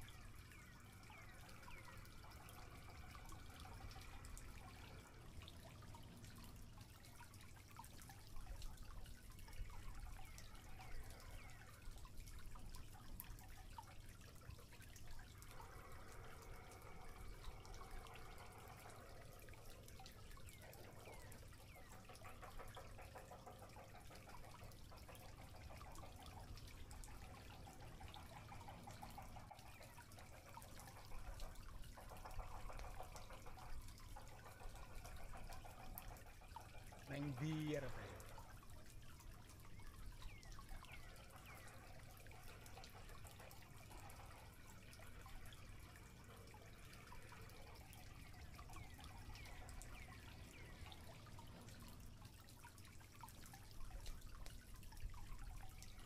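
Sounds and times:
small clicks and ticks: 0.0s - 56.0s.

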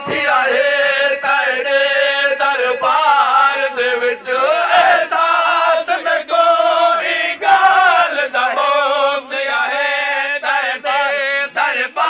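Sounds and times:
man singing lament through loudspeaker: 0.0s - 12.0s.

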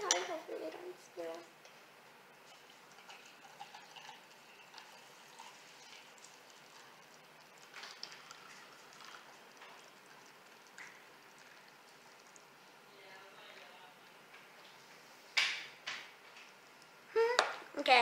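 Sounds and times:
tea trickling onto ice: 2.4s - 12.7s.

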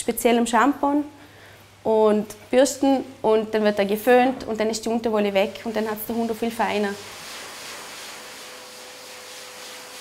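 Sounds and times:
pet dryer blowing air: 6.9s - 10.0s.

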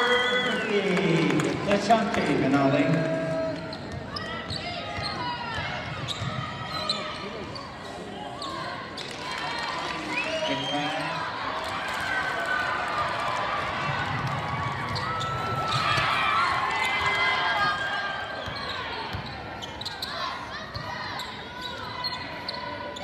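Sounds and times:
voices echoing in gym: 0.0s - 23.0s.

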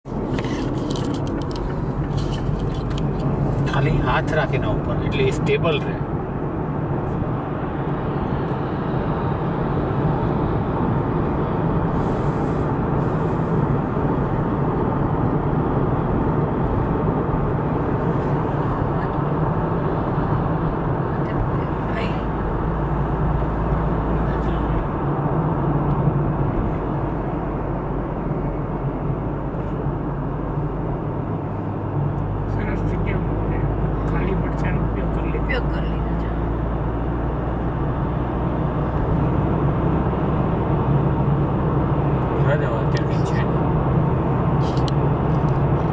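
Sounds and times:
car engine low hum: 0.0s - 45.9s
tyres on asphalt: 0.0s - 45.9s.

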